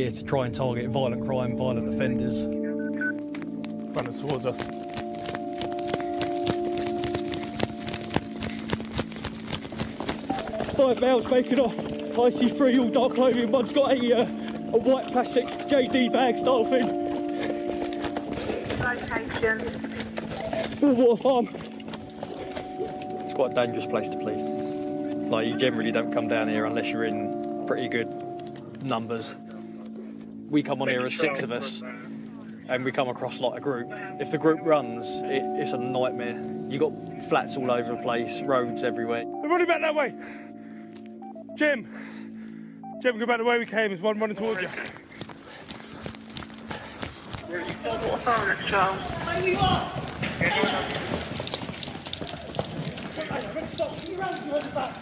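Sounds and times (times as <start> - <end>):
footsteps running on pavement: 3.2 - 25.0, 44.3 - 55.0.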